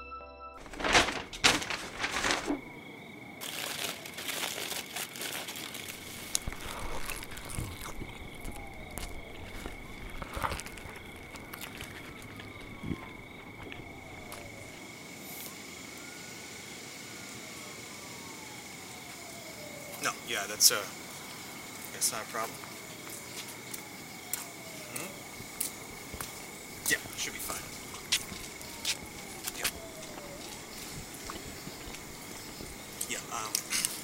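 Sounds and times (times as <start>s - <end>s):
foil wrappers crinkling: 0.6s - 2.7s, 3.4s - 12.8s
paper bag rustling: 0.6s - 2.8s, 3.4s - 14.3s.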